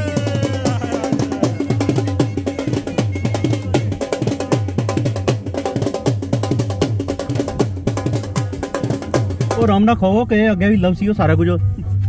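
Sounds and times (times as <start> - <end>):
dhol drum beating: 0.0 - 10.0.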